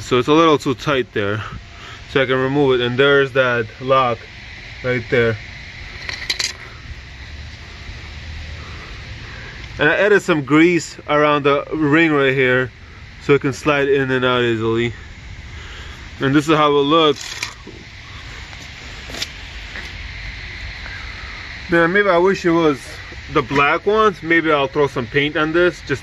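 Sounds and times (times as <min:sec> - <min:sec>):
low rumble: 0:00.0 - 0:25.9
low background hum: 0:00.0 - 0:26.0
metal parts clinking: 0:06.0 - 0:06.6, 0:17.1 - 0:17.6.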